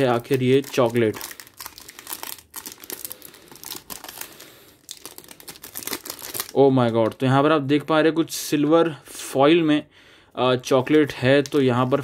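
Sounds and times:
plastic wrapper crinkling: 0.0s - 7.4s, 10.6s - 12.0s.

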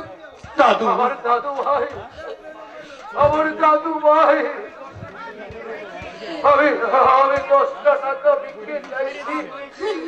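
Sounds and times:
speech through loudspeakers: 0.0s - 10.0s.

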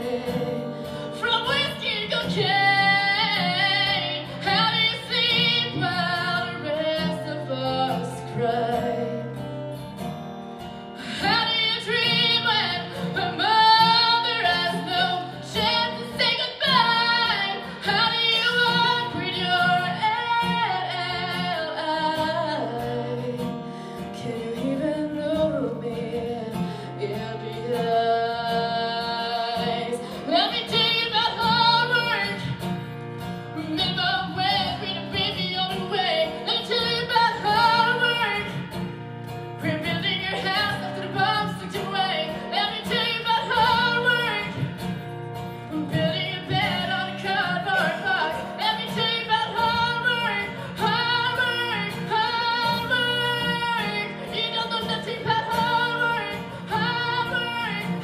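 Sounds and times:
woman singing slow melody: 0.0s - 9.5s, 11.0s - 58.0s
strummed acoustic guitar: 0.0s - 58.0s.

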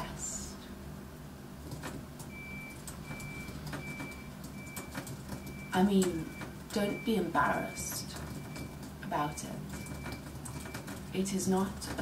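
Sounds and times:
keyboard typing clicks: 1.7s - 6.8s, 9.6s - 11.1s
reversing alarm beeping: 2.3s - 11.0s.

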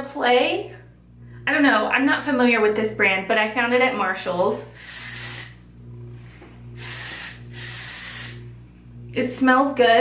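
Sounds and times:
spray hissing from nozzle: 4.8s - 5.6s, 6.8s - 8.4s.

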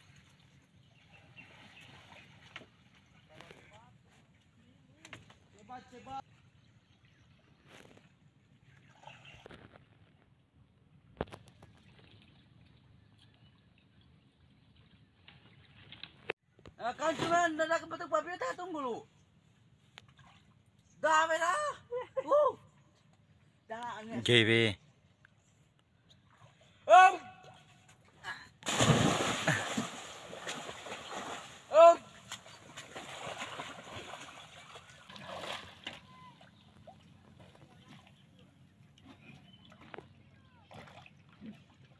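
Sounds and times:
water sloshing and lapping: 0.0s - 16.4s, 19.4s - 21.0s, 25.3s - 41.9s
short shouts: 26.8s - 27.7s, 31.7s - 32.2s
big splash into water: 28.6s - 31.7s.

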